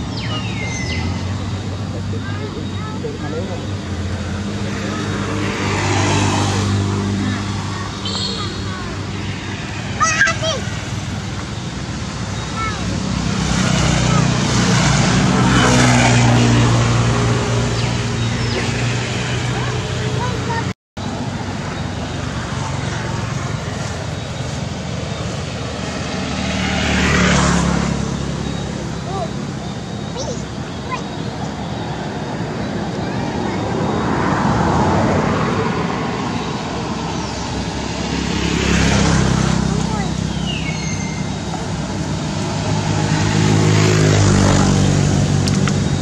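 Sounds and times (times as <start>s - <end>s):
motorbikes and cars passing: 0.0s - 46.0s.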